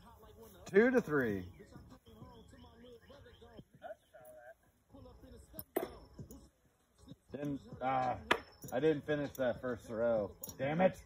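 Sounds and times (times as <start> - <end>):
faint distant talk: 0.0 - 11.0
metal washer clinking: 7.4 - 11.0.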